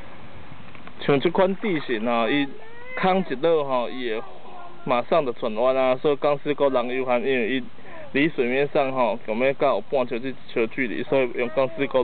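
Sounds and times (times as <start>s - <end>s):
high voice calling: 2.2s - 5.1s, 11.1s - 12.0s.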